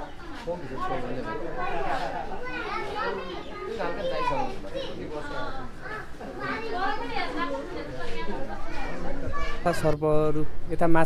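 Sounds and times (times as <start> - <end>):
children talking and calling out: 0.0 - 10.6
visitors chatter: 0.0 - 11.0.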